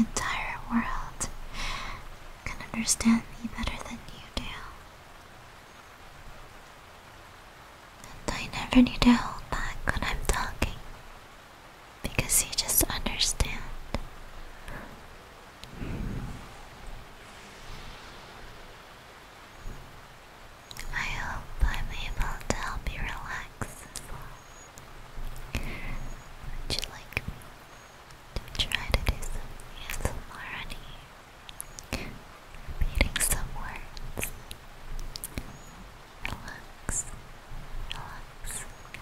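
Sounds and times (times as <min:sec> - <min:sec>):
woman whispering: 0:00.0 - 0:01.4, 0:02.4 - 0:04.8, 0:08.0 - 0:10.9, 0:12.0 - 0:15.0, 0:20.7 - 0:24.5, 0:25.4 - 0:27.4, 0:28.4 - 0:31.1, 0:31.9 - 0:32.2, 0:32.8 - 0:34.4, 0:36.2 - 0:37.2, 0:37.9 - 0:38.8.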